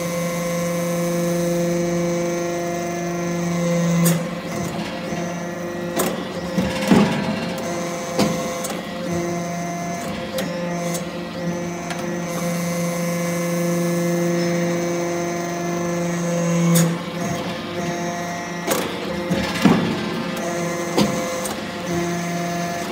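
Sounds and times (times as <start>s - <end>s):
hydraulic press humming and whining: 0.0s - 22.9s.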